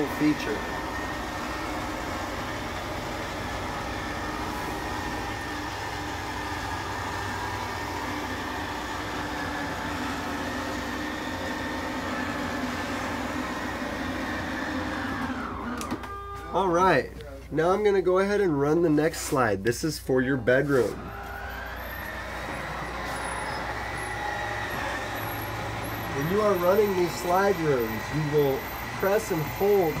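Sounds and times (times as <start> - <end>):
motor whining and humming: 0.0 - 17.2, 20.8 - 30.0.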